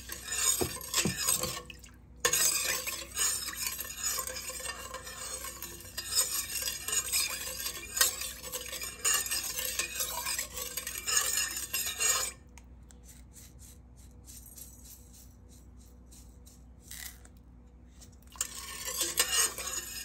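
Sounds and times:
liquid swishing: 0:00.0 - 0:12.3, 0:18.3 - 0:20.0.

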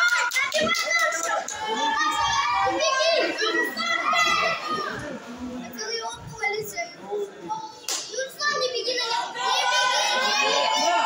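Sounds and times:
children shouting in a hall: 0:00.0 - 0:05.2, 0:08.5 - 0:11.0.

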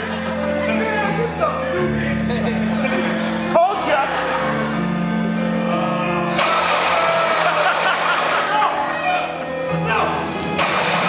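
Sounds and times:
loud wash of noise: 0:06.3 - 0:08.8, 0:10.6 - 0:11.0
live band music: 0:06.3 - 0:09.6.

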